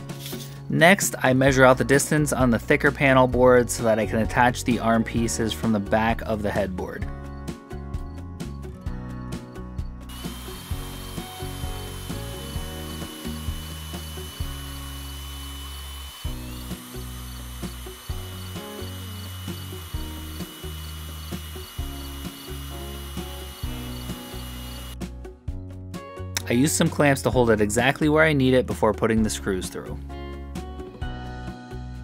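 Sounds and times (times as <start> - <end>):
background music: 0.0 - 32.0
cordless drill whining: 10.1 - 25.0.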